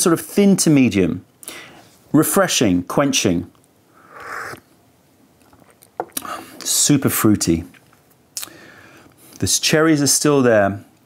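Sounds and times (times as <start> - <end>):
tea slurping from a cup: 4.0 - 4.6.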